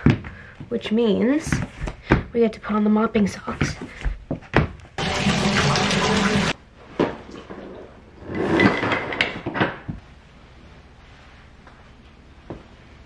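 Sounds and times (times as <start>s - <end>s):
tap water rushing: 5.0s - 6.6s.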